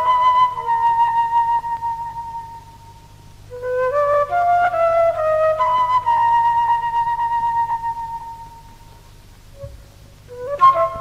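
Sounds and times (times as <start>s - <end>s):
flute long note: 0.0s - 9.0s, 9.6s - 11.0s.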